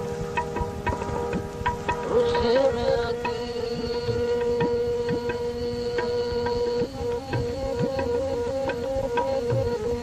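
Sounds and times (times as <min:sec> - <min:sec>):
hand drum strokes: 0:00.0 - 0:10.0
held melodic tone: 0:00.0 - 0:10.0.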